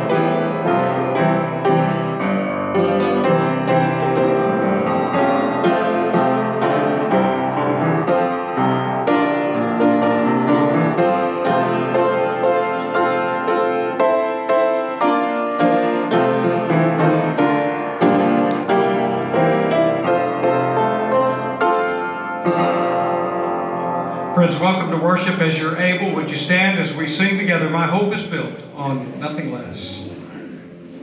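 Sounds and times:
keyboard playing held chords: 0:00.0 - 0:28.4
man speaking: 0:24.3 - 0:30.3.

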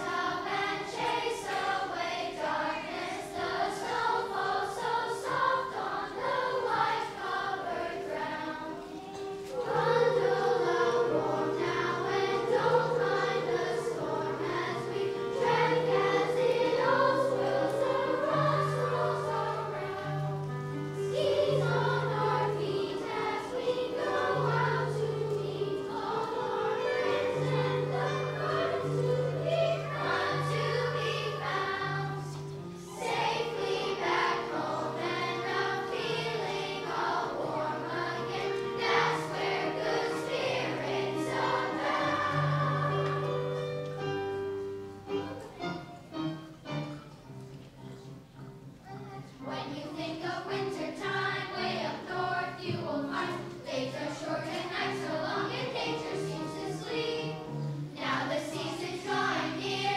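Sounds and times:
children's choir singing: 0:00.0 - 0:59.9
instrumental accompaniment: 0:00.0 - 0:59.9.

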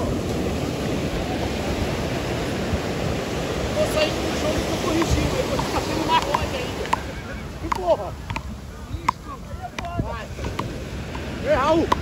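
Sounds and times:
surf: 0:00.0 - 0:12.0
wind on microphone: 0:00.0 - 0:12.0
paddles knocking rubber ball: 0:04.9 - 0:12.0.

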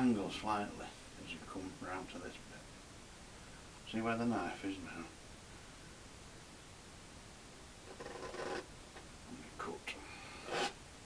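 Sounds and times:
painting knife scraping paint: 0:07.9 - 0:08.7, 0:10.4 - 0:10.8.

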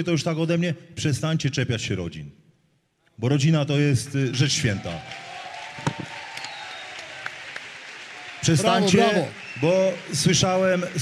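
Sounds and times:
audience applause: 0:04.4 - 0:11.0.

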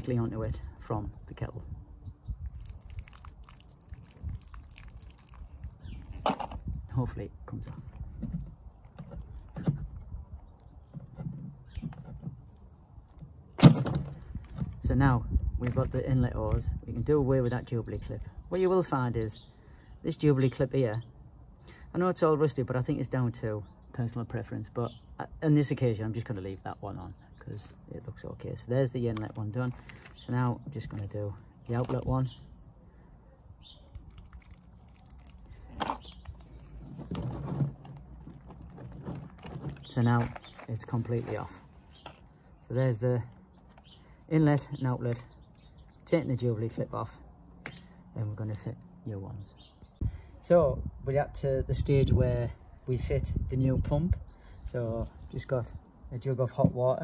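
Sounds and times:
handling clicks and rustles: 0:35.6 - 0:42.3.

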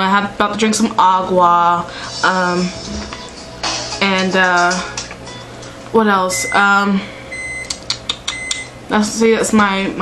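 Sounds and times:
microwave beeps: 0:06.2 - 0:08.8.

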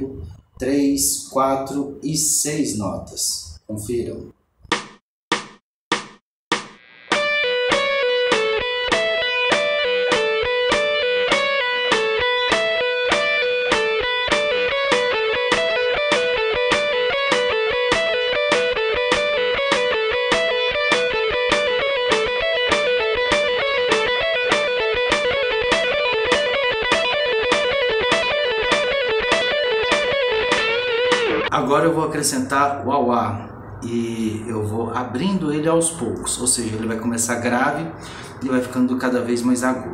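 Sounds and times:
electric guitar lick: 0:06.7 - 0:31.5.

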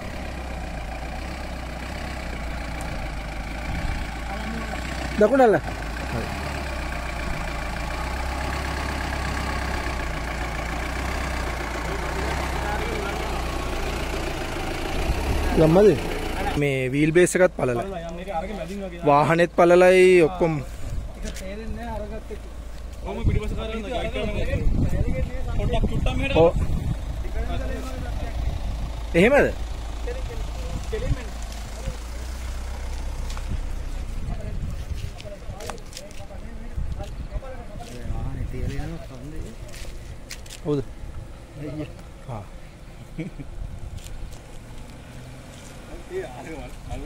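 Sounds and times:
steady low rumble: 0:00.0 - 0:46.1
vehicle engine running at low revs: 0:00.0 - 0:47.0.

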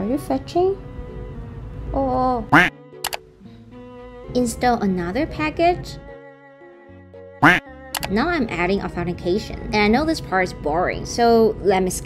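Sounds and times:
soft background music: 0:00.0 - 0:12.0
duck quack: 0:02.5 - 0:02.7.

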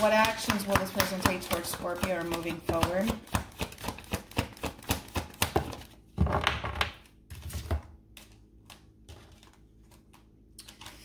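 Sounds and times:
cards clicking and tapping: 0:00.0 - 0:06.0.

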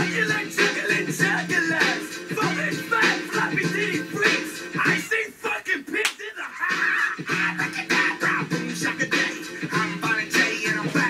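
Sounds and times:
hip-hop music: 0:00.0 - 0:11.0.

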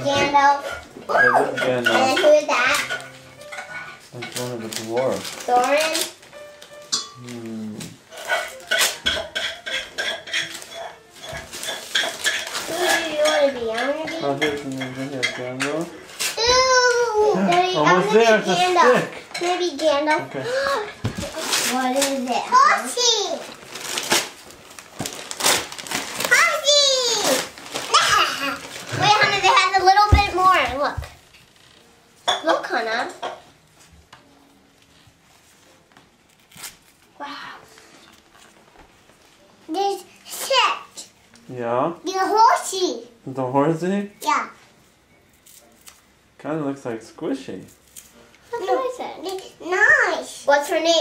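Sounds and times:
wrapping paper rustling: 0:00.6 - 0:19.8, 0:20.4 - 0:30.9, 0:33.8 - 0:40.4, 0:47.6 - 0:49.6
child exclaiming: 0:01.1 - 0:01.5, 0:16.4 - 0:17.5, 0:26.3 - 0:30.1.

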